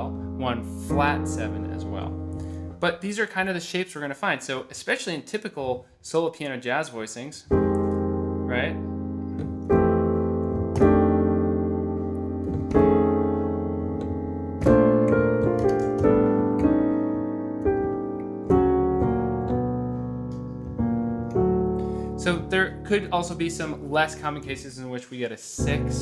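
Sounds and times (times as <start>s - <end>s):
solo jazz piano chords: 0.0s - 2.8s, 7.5s - 24.6s, 25.6s - 26.0s.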